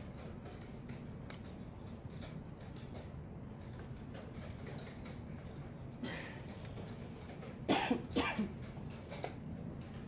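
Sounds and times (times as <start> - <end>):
person coughing: 7.7 - 8.6.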